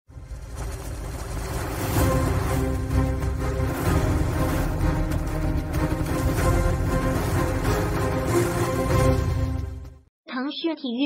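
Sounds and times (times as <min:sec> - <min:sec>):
intro music: 0:00.1 - 0:10.1.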